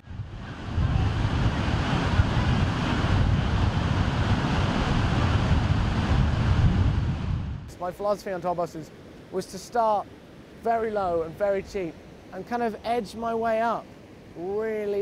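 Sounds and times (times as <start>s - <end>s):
wind buffeting microphone: 0.0s - 7.8s
surf breaking on beach: 0.0s - 15.0s.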